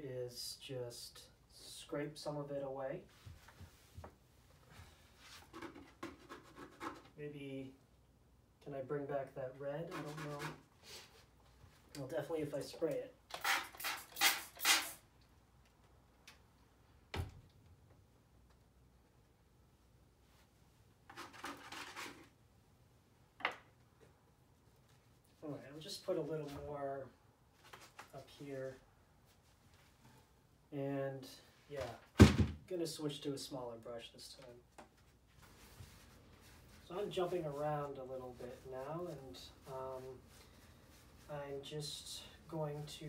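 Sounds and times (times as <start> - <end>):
tool scraping wet paint: 9.9 - 10.6.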